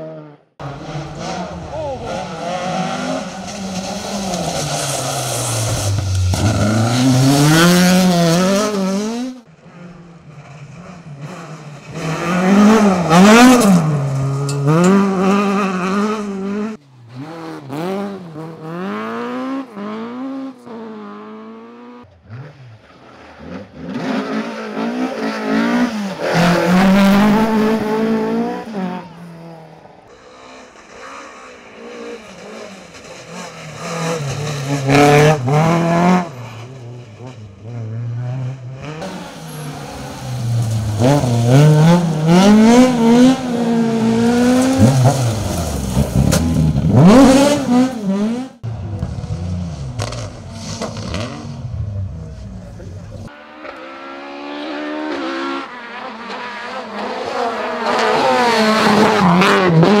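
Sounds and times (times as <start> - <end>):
rally car engines revving: 0.0 - 60.0.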